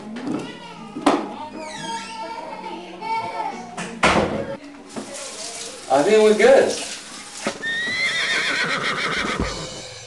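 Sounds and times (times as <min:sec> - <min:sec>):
horse whinny: 0:07.6 - 0:09.8.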